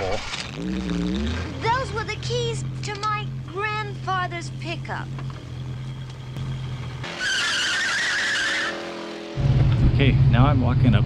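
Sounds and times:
car engine hum: 0.2 - 11.0
tyre squeal: 7.0 - 9.0.

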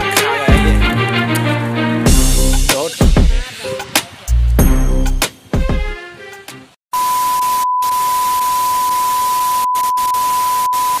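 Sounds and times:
steady test beep: 7.0 - 11.0.

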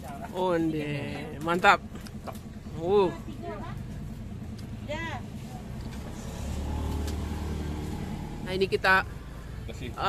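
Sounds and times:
low engine hum: 0.0 - 10.0.

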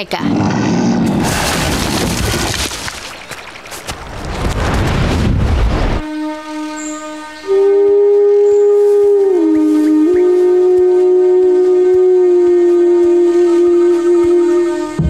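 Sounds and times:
solo wind instrument long notes: 6.0 - 15.0.

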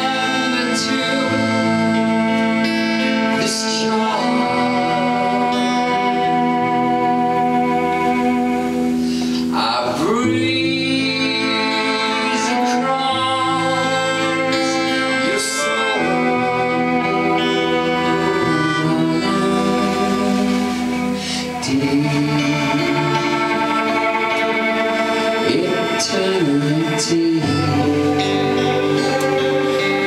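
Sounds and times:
live band playing slow chords: 0.0 - 30.0.

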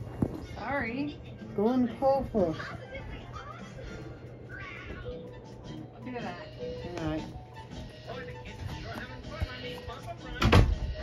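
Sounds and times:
cartoon background music: 2.5 - 11.0.

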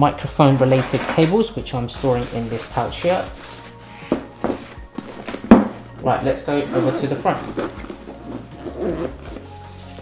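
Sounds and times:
bag thumping on wooden surface: 4.1 - 5.8.

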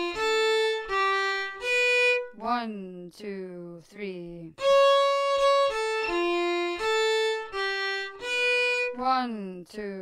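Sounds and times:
solo violin slow held notes: 0.0 - 2.5, 4.6 - 9.2.

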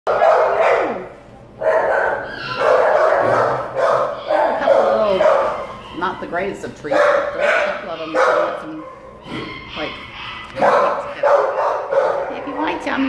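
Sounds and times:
dogs barking echoing: 0.1 - 13.0.

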